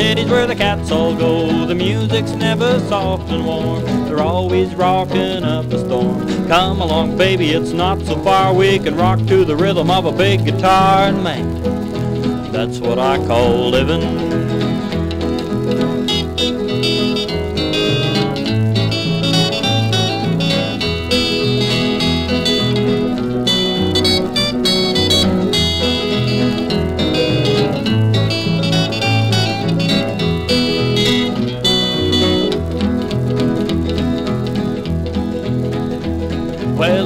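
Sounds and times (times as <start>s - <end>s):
picked electric guitar lead: 0.0s - 37.0s
stepping bass line: 0.0s - 37.0s.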